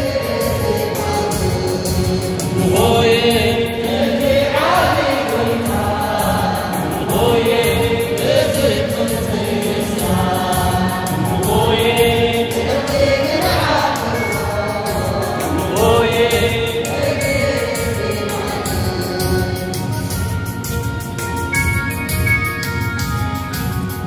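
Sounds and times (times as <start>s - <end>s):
choir singing a hymn: 0.0s - 20.8s
quick percussive beat: 0.0s - 24.0s.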